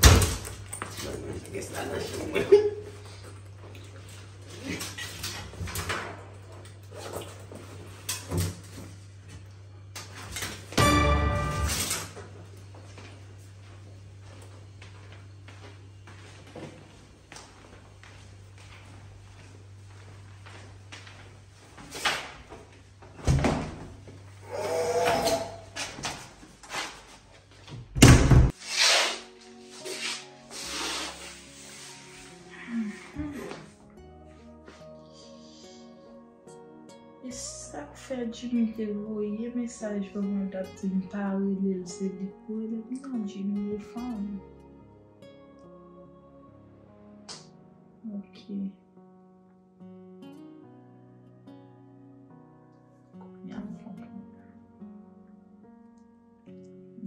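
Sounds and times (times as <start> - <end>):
door squeak: 24.9 - 25.7
heavy door thud: 28.0 - 28.5.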